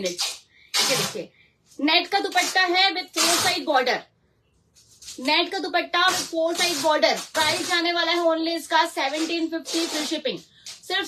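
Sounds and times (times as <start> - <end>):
person speaking: 5.0 - 11.0.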